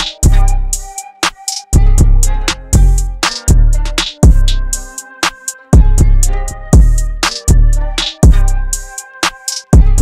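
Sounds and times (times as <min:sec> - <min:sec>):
drum machine percussion: 0:00.0 - 0:10.0
steady pitched melody: 0:00.0 - 0:10.0.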